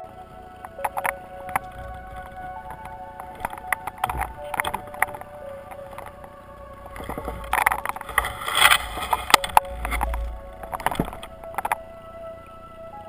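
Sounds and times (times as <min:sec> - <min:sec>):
soft ambient music: 0:00.0 - 0:13.0
underwater rushing water and bubbles: 0:00.3 - 0:12.1.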